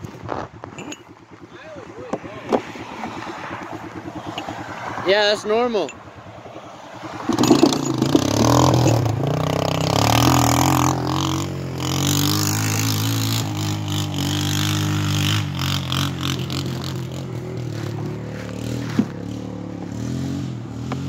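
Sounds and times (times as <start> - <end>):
engine knocks: 0.0 - 4.9, 5.8 - 11.2
quad engine running: 0.0 - 21.0.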